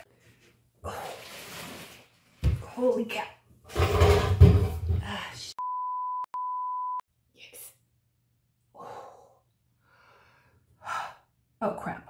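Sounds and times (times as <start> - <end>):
censor bleep tone: 5.6 - 7.0.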